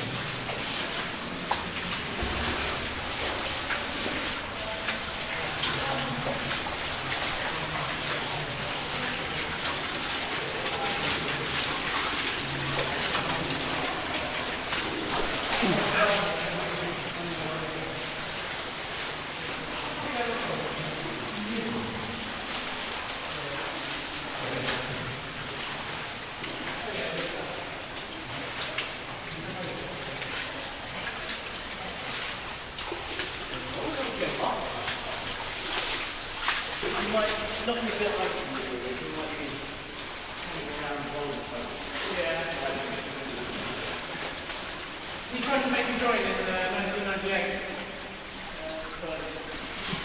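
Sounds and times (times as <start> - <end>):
faint splashes of wading: 0.0 - 50.0
stream water rushing in cave: 0.0 - 50.0.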